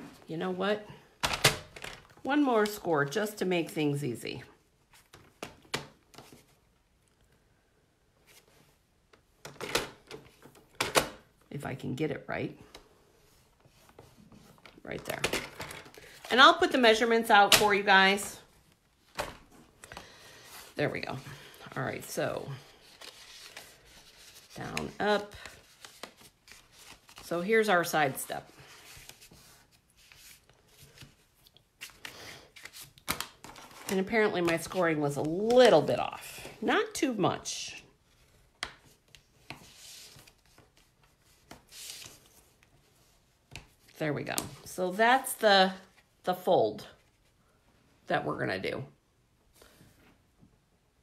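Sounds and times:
paper rustling and sliding: 22.6 - 27.6, 28.2 - 35.0, 38.1 - 43.7
paper crackle: 22.7 - 27.3.

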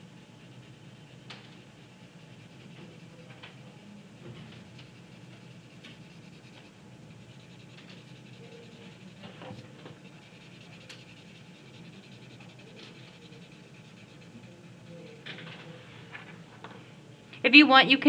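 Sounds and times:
pencil scratching on paper: 0.0 - 15.8
low room hum: 0.0 - 18.0.

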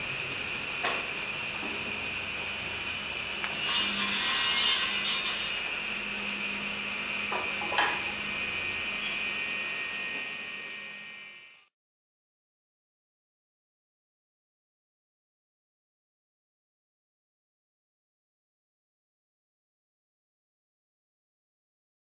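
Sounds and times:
high-pitched whine: 1.3 - 11.7
tool sawing wood: 3.5 - 5.7.

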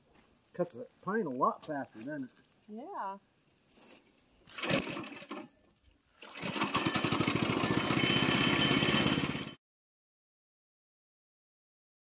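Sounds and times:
small gasoline engine running: 4.5 - 5.5, 6.2 - 9.6.

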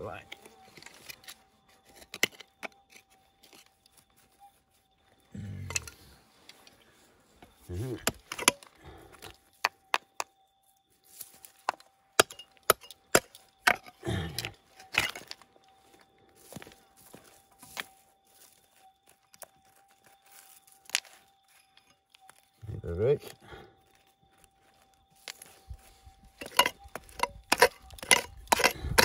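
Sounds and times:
pick scraping soil: 0.2 - 9.3, 25.2 - 29.0.

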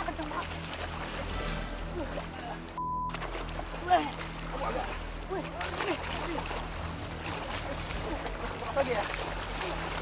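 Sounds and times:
water splashing and running: 0.0 - 10.0.

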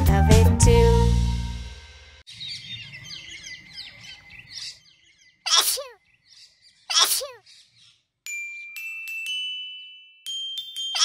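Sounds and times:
birds chirping: 2.3 - 9.0
person sneezing: 5.5 - 6.0, 6.9 - 7.4.

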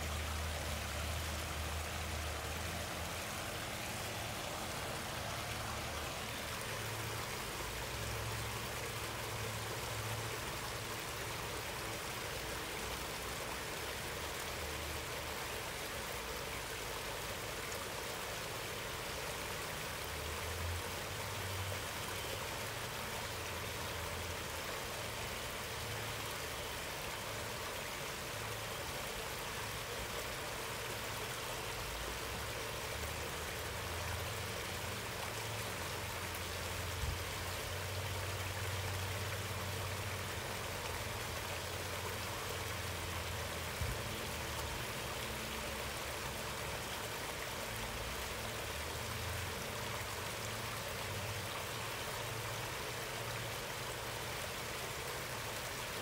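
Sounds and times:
waterfall splashing over rocks: 0.0 - 56.0.

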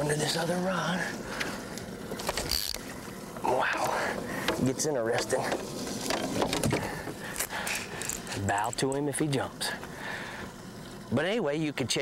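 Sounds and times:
fishing rods and reels clicking: 1.4 - 3.0, 3.6 - 9.4.

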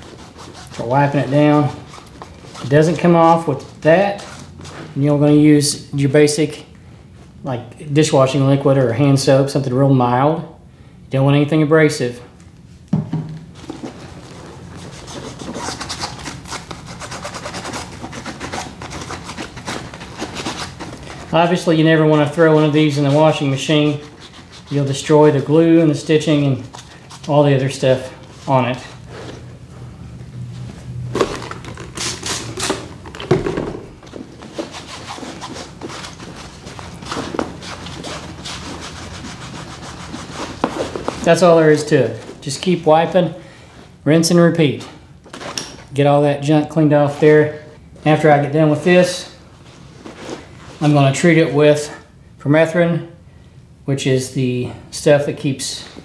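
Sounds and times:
cloth rag rubbing nylon strap: 0.0 - 5.4, 13.5 - 29.7, 34.0 - 43.2.

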